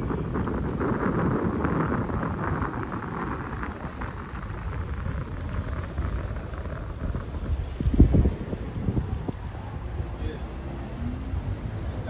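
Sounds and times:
low street rumble: 0.0 - 12.0
wind buffeting microphone: 0.0 - 12.0.

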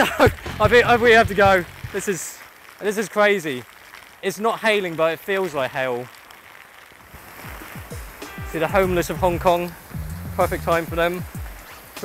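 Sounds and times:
heavy rain: 0.0 - 12.0
wind: 0.0 - 12.0
falling bass notes music: 0.3 - 2.0, 7.6 - 11.4.

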